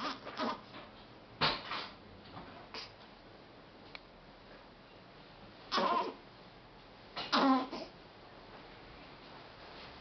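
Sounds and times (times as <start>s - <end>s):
baby grunting: 0.0s - 0.7s, 2.7s - 2.9s, 5.7s - 6.2s, 7.2s - 8.0s.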